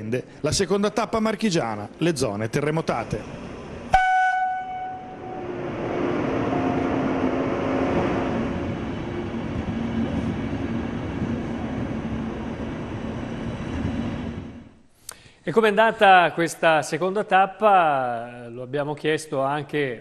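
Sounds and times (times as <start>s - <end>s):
passenger train rumbling past: 0.0s - 14.8s
train horn toot: 3.9s - 7.2s.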